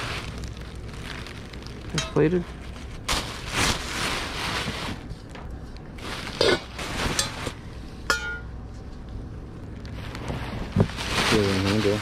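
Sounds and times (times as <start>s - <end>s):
tissue paper rustling: 0.0s - 5.4s, 6.0s - 7.6s, 9.8s - 12.0s.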